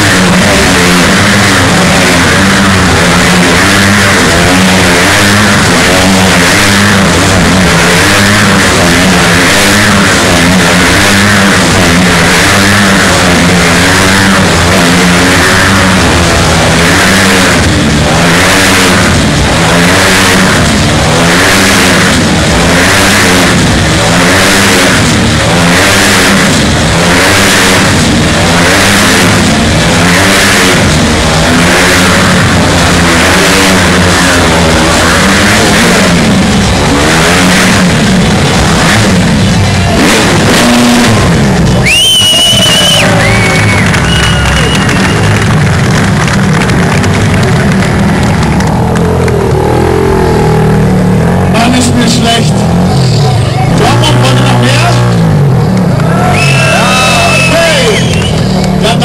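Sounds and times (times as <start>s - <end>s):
motorcycle engines racing: 0.0s - 59.0s.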